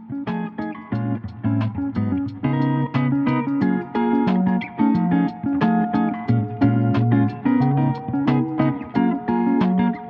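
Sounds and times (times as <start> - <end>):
plucked guitar music: 0.0 - 10.0
bass line: 0.9 - 10.0.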